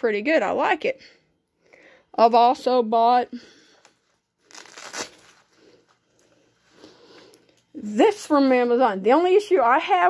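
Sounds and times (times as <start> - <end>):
plastic packaging rustling: 4.0 - 6.3.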